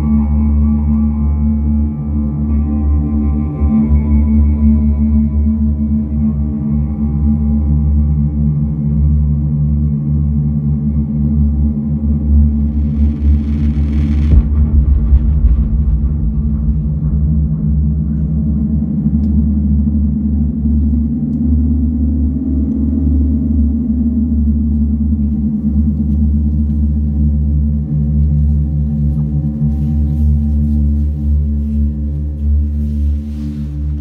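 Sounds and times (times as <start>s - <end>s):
ambient electronic drone: 0.0s - 34.0s
deep low hit: 12.4s - 20.6s.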